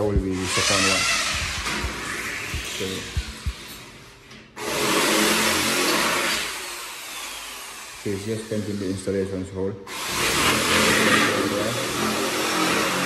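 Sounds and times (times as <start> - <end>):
electric drill boring into wall: 0.4 - 3.9, 4.6 - 9.2, 9.9 - 13.0.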